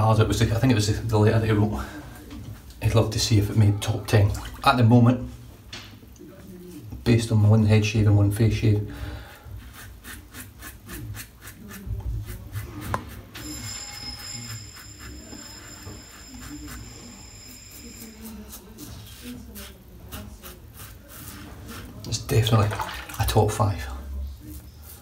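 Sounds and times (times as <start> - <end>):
razor scraping stubble: 9.6 - 22.1.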